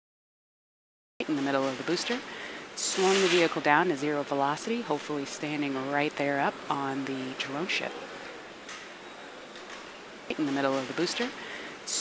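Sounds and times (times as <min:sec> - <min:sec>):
faint steady hiss: 0:01.2 - 0:12.0.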